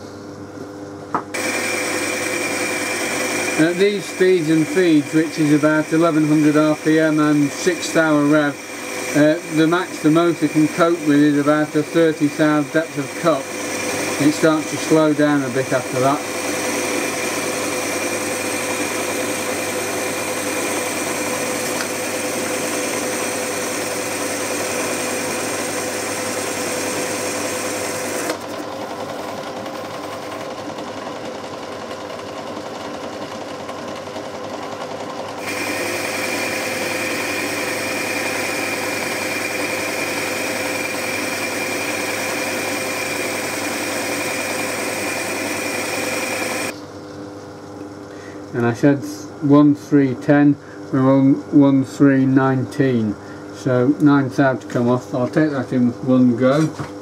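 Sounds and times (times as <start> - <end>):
metal lathe whining: 1.4 - 30.5, 35.3 - 46.8.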